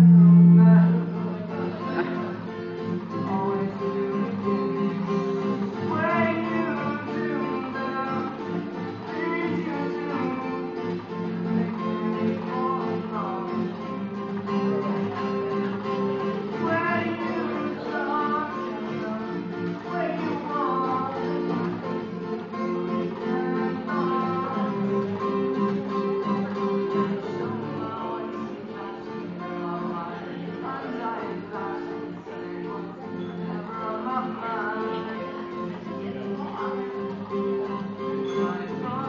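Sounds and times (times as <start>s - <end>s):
acoustic guitar: 0.0s - 39.0s
man singing: 0.0s - 39.0s.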